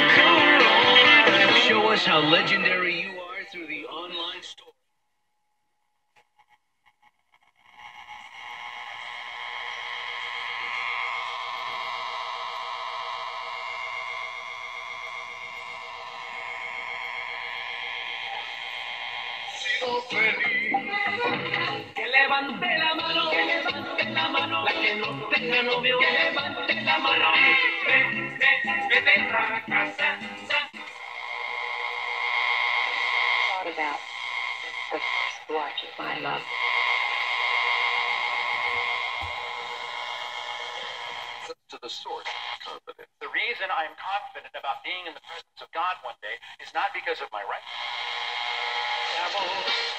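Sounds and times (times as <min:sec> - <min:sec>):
radio tuning hiss and whine: 0:00.0 - 0:04.7, 0:06.1 - 0:49.9
whistling interference tones: 0:06.3 - 0:21.3, 0:30.8 - 0:41.6
warbling voice on radio: 0:33.4 - 0:37.1, 0:40.8 - 0:48.0.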